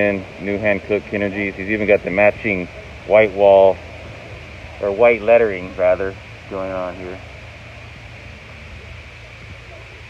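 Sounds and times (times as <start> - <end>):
faint hiss: 0.0 - 10.0
steady low hum: 0.0 - 10.0.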